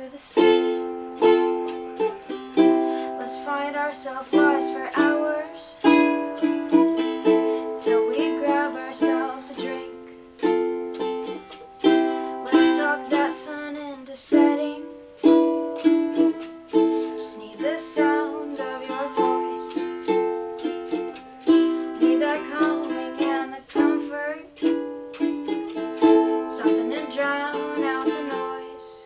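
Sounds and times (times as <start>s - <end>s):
ukulele strumming: 0.0s - 29.0s.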